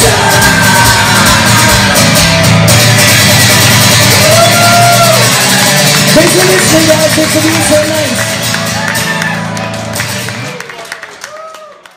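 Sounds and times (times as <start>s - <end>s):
acoustic guitar strumming: 0.0s - 10.5s.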